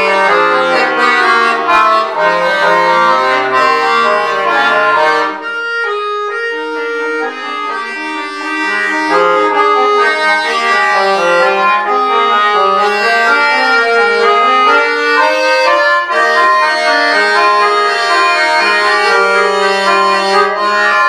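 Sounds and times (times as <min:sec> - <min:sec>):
button accordion solo: 0:00.0 - 0:21.0.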